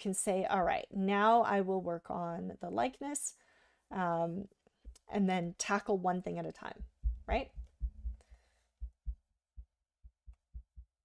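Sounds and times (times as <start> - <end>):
stylus tapping on drawing tablet: 6.8 - 8.2.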